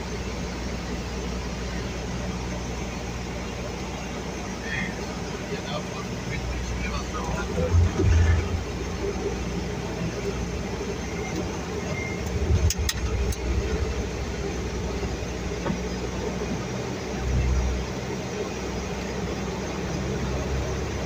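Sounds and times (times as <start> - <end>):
low rumbles: 0.0 - 20.4
turboprop engines in flight: 0.0 - 21.0.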